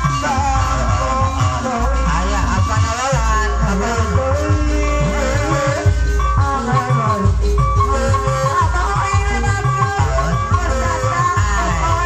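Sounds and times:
gamelan ensemble music: 0:00.0 - 0:12.0.

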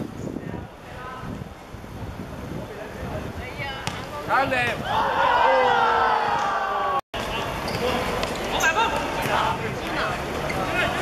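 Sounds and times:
outdoor football game noise: 0:00.0 - 0:11.0
players shouting: 0:04.7 - 0:07.0.

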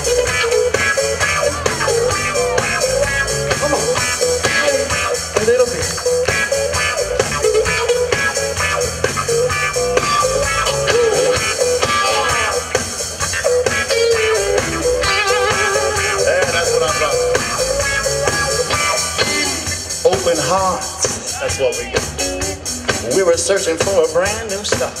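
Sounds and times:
electric guitar lines: 0:00.0 - 0:20.8
drums and bass: 0:00.0 - 0:25.0.

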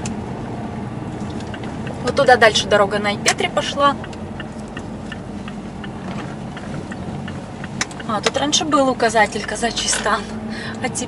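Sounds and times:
car engine and road rumble: 0:00.0 - 0:11.0
turn signal ticking: 0:00.0 - 0:11.0.

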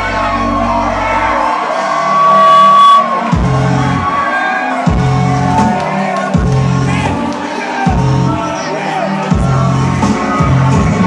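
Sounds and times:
crowd shouting: 0:00.0 - 0:11.0
live hip-hop music over pa: 0:00.0 - 0:11.0
heavy bass hits: 0:03.3 - 0:03.9.

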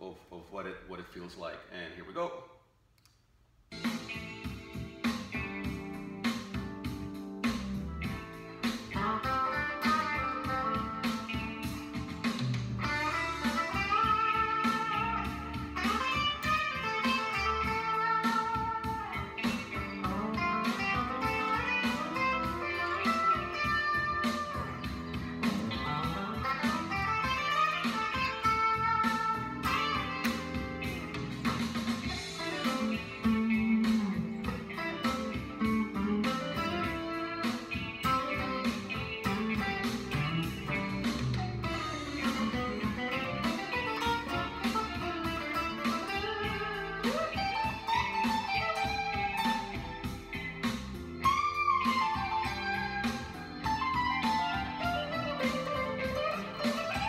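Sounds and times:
blues backing track: 0:03.7 - 0:57.0
electric guitar blues licks: 0:03.7 - 0:57.0.

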